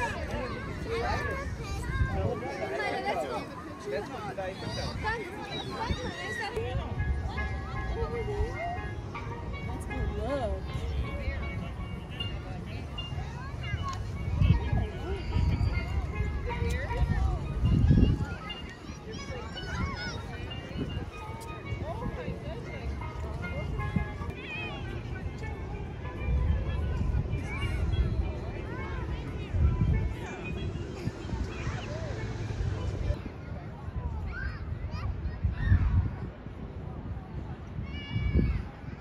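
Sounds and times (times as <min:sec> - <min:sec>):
faint music: 0:00.0 - 0:39.0
people talking: 0:00.0 - 0:39.0.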